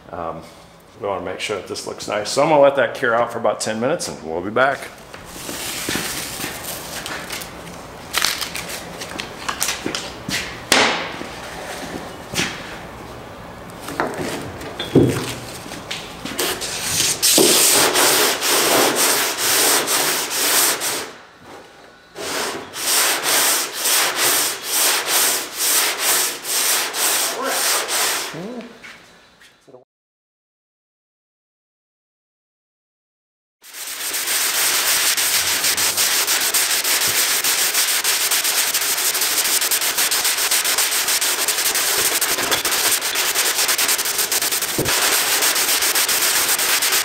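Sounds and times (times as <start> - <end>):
hand sanding block scraping: 16.3 - 21.1, 22.2 - 28.4, 33.6 - 47.0.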